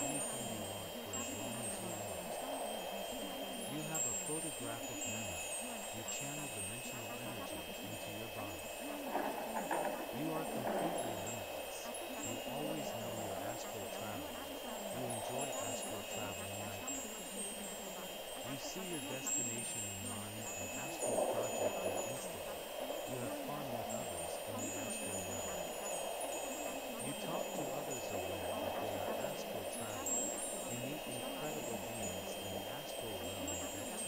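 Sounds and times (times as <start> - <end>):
low muffled background: 0.0 - 34.0
wind chimes tinkling: 0.0 - 34.0.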